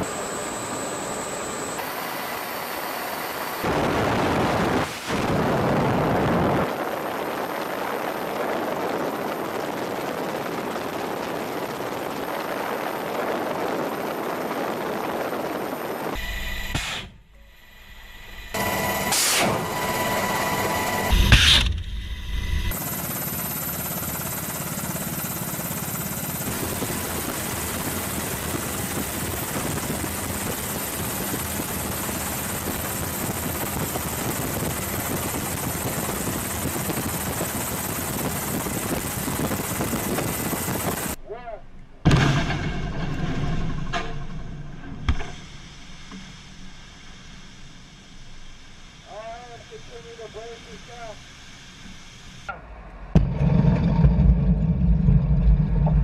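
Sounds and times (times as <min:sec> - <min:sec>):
helicopter engine and rotor: 0:00.0 - 0:04.7, 0:05.6 - 0:16.8, 0:18.4 - 0:21.6, 0:22.6 - 0:41.2
sharp bangs: 0:42.0 - 0:45.4, 0:52.5 - 0:56.0.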